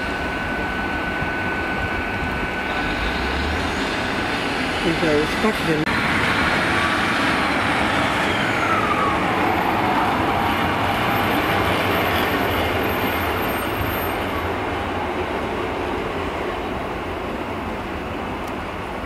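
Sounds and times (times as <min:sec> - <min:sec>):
diesel train passing: 0:00.0 - 0:19.0
train wheels on track: 0:00.0 - 0:19.0
brief falling whine: 0:06.6 - 0:11.7.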